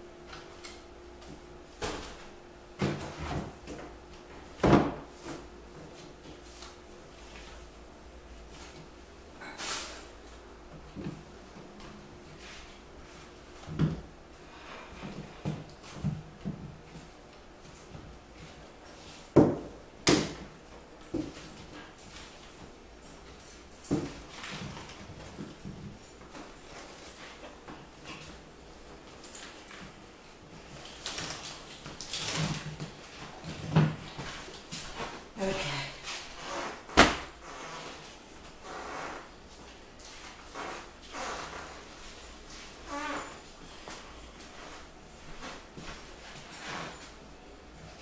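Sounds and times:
clothes and hangers clattering: 14.7s - 48.0s.

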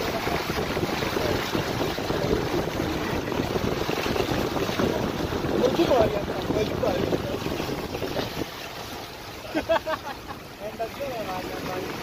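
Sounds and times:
wind rushing over microphone: 0.0s - 9.0s.

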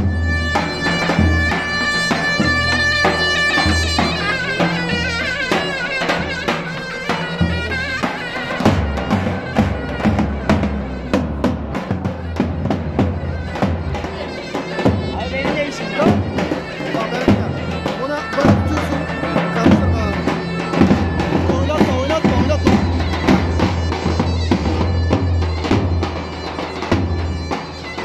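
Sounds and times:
shrill reed melody: 0.0s - 28.0s
steady drumbeat: 0.0s - 28.0s.

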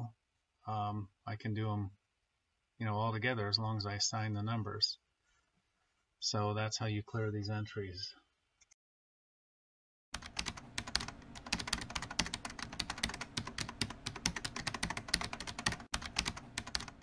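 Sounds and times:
rapid typing on keyboard: 10.2s - 17.0s.

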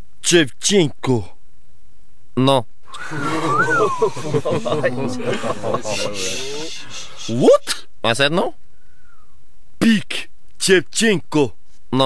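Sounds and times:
people laughing: 2.9s - 7.6s
high voice sliding in pitch: 4.8s - 7.6s.

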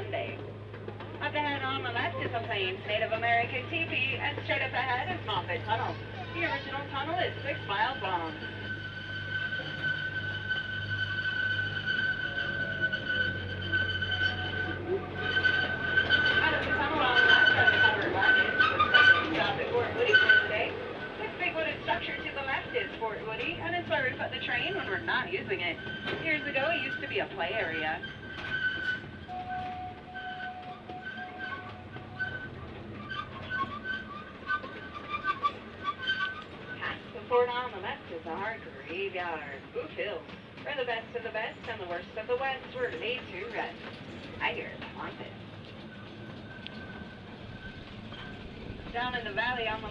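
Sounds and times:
ride train whining: 0.0s - 49.9s.

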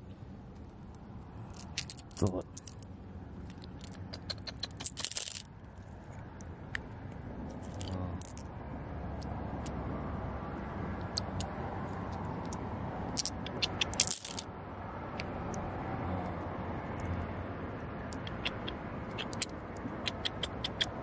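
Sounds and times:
shells and pebbles clicking in water: 1.6s - 2.9s, 3.5s - 5.5s, 12.1s - 14.5s.

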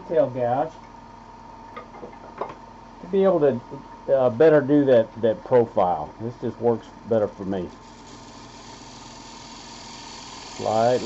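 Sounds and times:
wood lathe motor hum: 7.1s - 11.0s.

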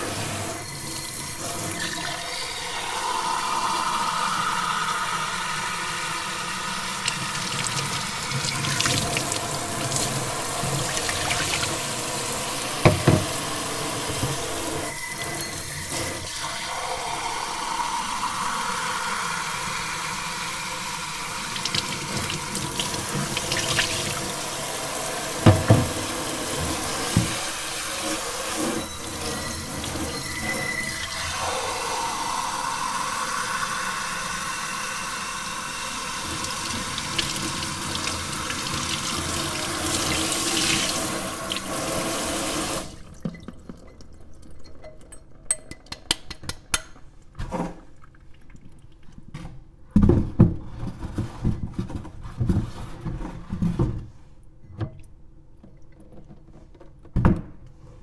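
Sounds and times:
faucet spray into metal sink: 21.3s - 31.7s, 36.0s - 42.9s
glass jars clinking: 43.2s - 46.1s.

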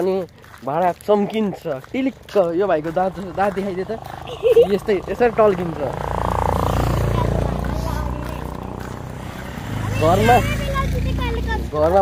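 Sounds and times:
vehicle engine running: 1.0s - 12.0s.

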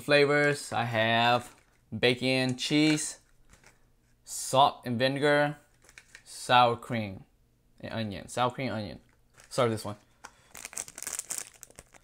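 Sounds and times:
plastic snack bag crinkling: 9.3s - 12.0s.

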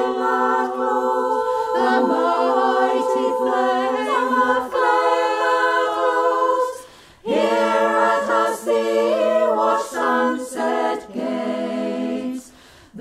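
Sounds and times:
choir singing in harmony: 0.0s - 13.0s.

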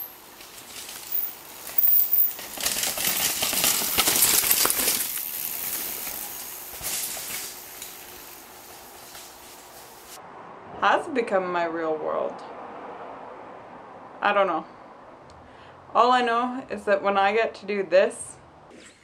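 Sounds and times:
bike rattling and clicking: 0.0s - 10.2s
bike tyres over dirt: 0.0s - 10.2s.

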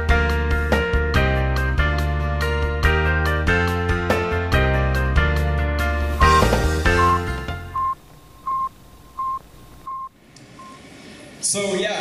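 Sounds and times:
intro music: 5.8s - 9.4s
short electronic beeps: 6.1s - 10.8s.

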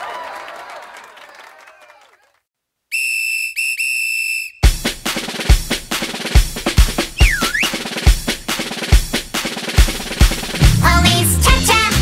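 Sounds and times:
crowd cheering: 0.0s - 2.4s
police whistle blasts: 2.9s - 4.7s, 7.2s - 7.8s
drum beat: 4.6s - 12.0s.

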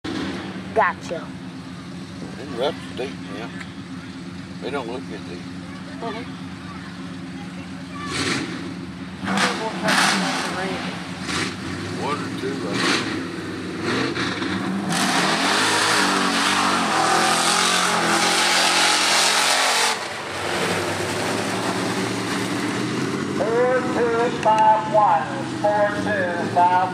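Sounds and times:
pickup truck engine revving: 0.1s - 26.9s
tires spinning in mud: 7.9s - 26.9s.

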